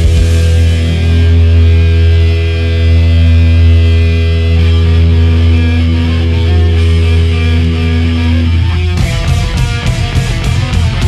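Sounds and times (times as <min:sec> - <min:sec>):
distorted electric guitar drone: 0:00.0 - 0:11.0.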